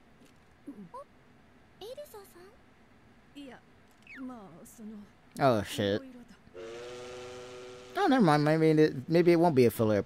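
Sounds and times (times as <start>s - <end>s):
train whistle blast: 6.6s - 8.2s.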